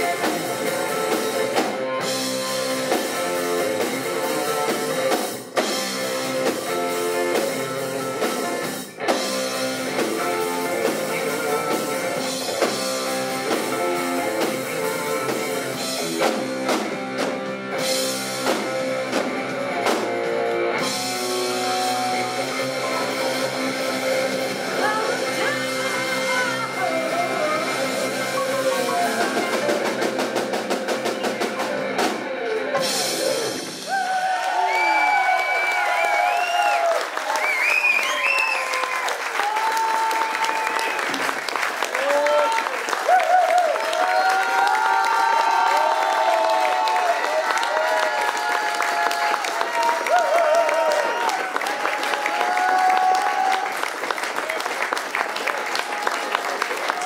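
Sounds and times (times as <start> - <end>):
live rock band playing: 0.0 - 57.0
audience clapping and cheering: 32.4 - 57.0
audience whoops: 33.8 - 57.0.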